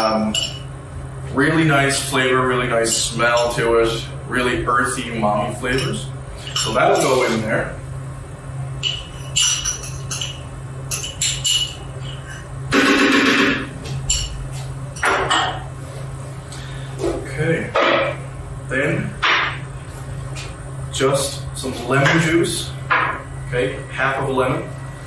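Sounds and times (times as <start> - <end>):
low hum of kitchen equipment: 0.0 - 25.0
kitchen clatter and knocks: 15.0 - 15.7.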